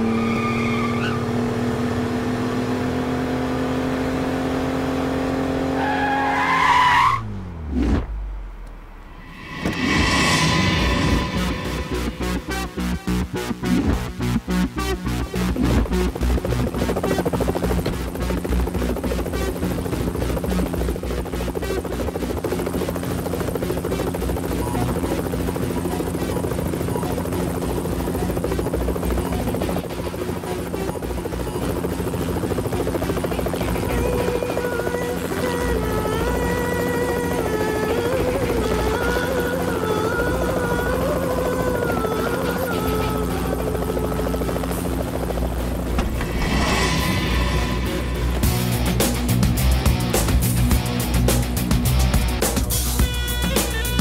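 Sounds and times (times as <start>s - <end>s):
film score music: 7.2s - 54.0s
helicopter rotor chopping: 9.2s - 54.0s.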